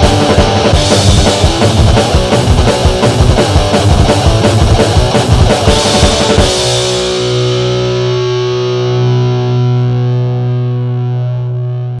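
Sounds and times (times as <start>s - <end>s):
driving music beat: 0.0s - 9.7s
distorted electric guitar chord: 0.0s - 12.0s.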